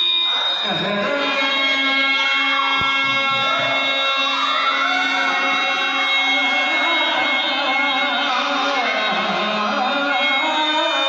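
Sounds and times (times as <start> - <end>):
harmonium sustained notes: 0.0 - 11.0
person singing: 0.6 - 11.0.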